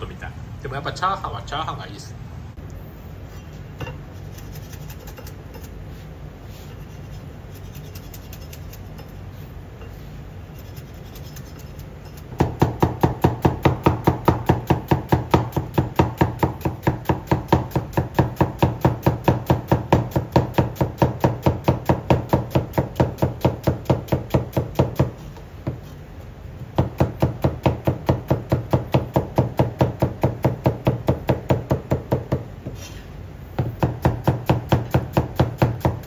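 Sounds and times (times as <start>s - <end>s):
knife chopping on cutting board: 11.1s - 25.9s, 26.8s - 32.8s, 33.6s - 36.0s.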